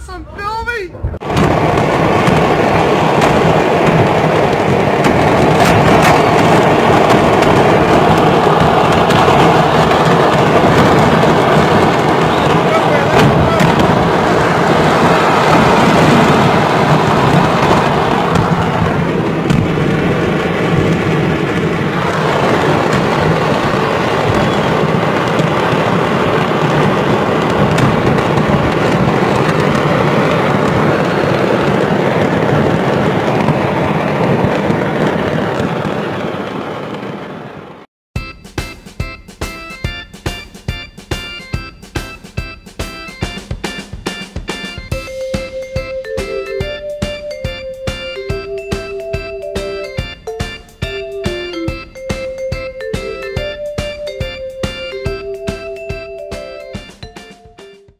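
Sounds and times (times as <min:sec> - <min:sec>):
fireworks crackling and banging: 0:01.1 - 0:37.9, 0:38.6 - 0:57.9.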